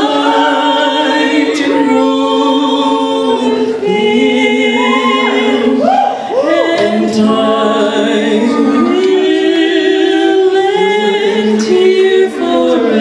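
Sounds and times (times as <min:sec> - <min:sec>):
women singing a slow duet: 0:00.0 - 0:13.0.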